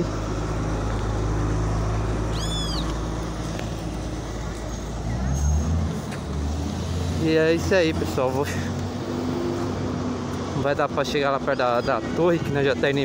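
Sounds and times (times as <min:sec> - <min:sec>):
car engines passing: 0:00.0 - 0:13.0
car pulling away: 0:00.0 - 0:13.0.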